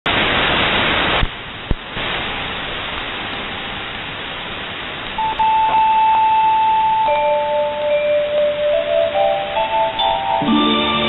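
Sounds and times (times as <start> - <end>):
radio interval signal tones: 5.1 - 11.0.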